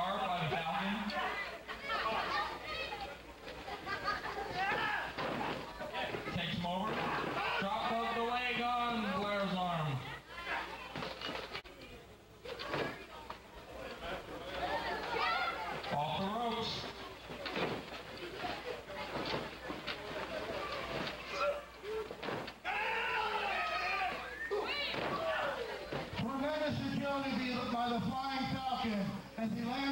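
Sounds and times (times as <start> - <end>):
shouting and chatter: 0.0 - 28.2.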